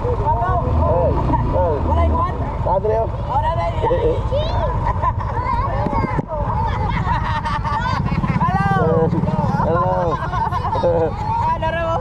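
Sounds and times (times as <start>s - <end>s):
motorcycle engine rumbling: 0.0s - 12.0s
people calling out: 3.3s - 12.0s.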